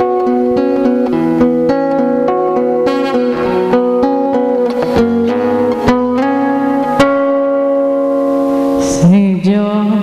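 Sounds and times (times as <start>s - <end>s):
classical guitar chord ringing: 0.0s - 9.2s.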